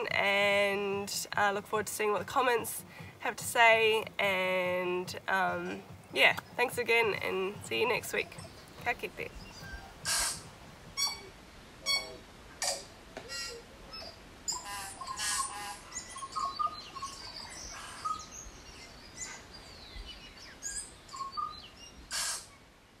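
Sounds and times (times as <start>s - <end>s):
birds chirping and calling: 2.1s - 22.6s.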